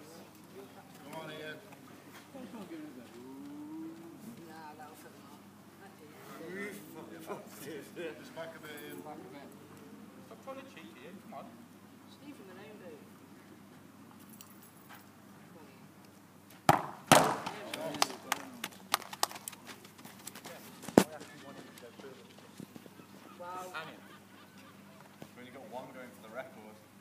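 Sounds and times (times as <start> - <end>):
voices calling out: 2.2 - 10.5, 20.6 - 25.7
football kicked hard: 16.7 - 17.5
ball crashing into goal: 16.7 - 17.6.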